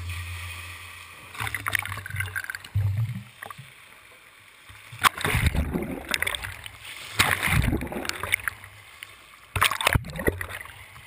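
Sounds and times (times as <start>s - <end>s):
water churning and lapping: 0.0s - 11.0s.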